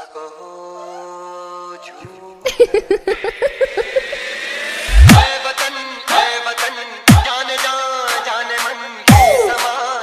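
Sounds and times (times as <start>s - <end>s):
stuttering laugh sample: 2.5s - 5.0s
rising noise sweep: 3.2s - 5.3s
heavy bass drop: 3.6s - 5.4s.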